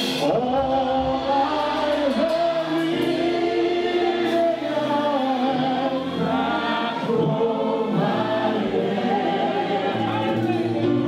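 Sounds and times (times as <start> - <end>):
man singing into microphone: 0.0 - 8.0
group of voices singing: 0.0 - 11.0
sustained musical accompaniment: 0.0 - 11.0.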